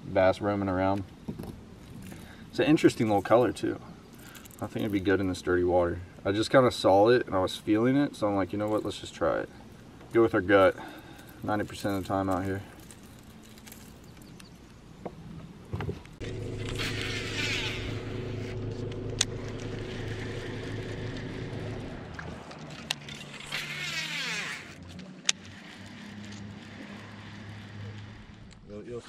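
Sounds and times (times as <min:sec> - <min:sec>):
fishing reel whirring: 0:16.2 - 0:22.2, 0:22.9 - 0:28.5
electric trolling motor humming: 0:16.2 - 0:28.6.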